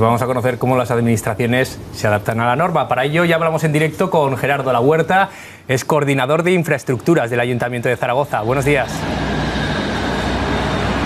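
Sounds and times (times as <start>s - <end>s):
street traffic rumble: 8.7s - 11.0s.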